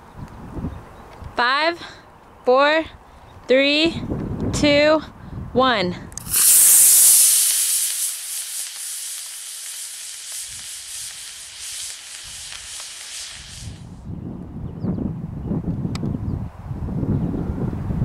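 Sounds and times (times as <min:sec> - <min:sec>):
rocket motor hissing: 0:06.2 - 0:14.0.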